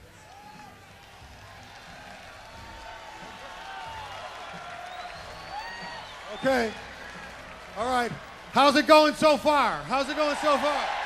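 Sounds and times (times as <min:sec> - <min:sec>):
audience cheering and applauding: 0:00.0 - 0:11.0.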